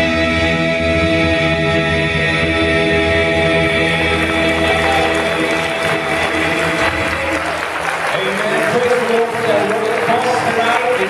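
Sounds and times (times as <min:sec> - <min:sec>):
congregation applauding: 0:03.7 - 0:11.0.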